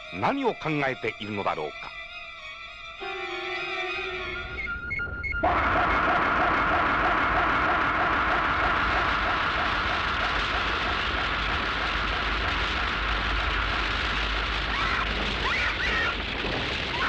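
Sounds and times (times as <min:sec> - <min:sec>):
whirring spinning sound effect: 0:05.4 - 0:17.0.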